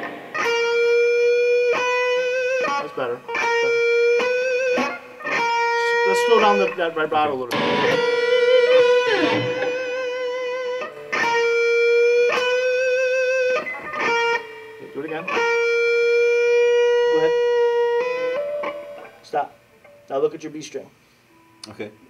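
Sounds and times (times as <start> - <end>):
electric guitar note with vibrato: 3.3 - 19.1.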